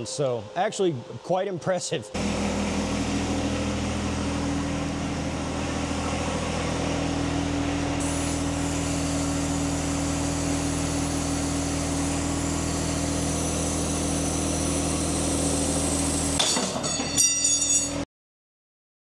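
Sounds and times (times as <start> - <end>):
machine humming: 0.0 - 18.0.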